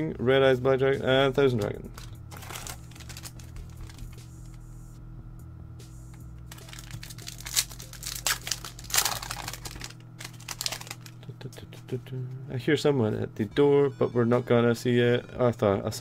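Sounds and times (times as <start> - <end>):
steady low hum: 0.0 - 16.0
foil wrapper crinkling: 1.5 - 4.6, 6.5 - 11.2.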